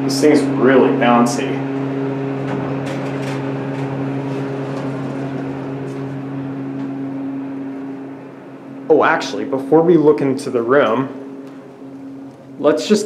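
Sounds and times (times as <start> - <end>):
elevator low hum: 0.0 - 13.0.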